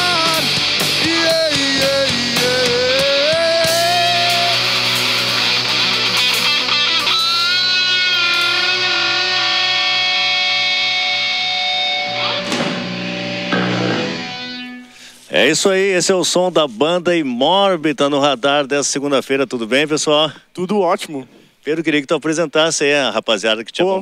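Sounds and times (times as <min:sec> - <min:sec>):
drums: 0:00.0 - 0:09.0
electric bass: 0:00.0 - 0:14.9
distorted electric guitars: 0:00.0 - 0:15.3.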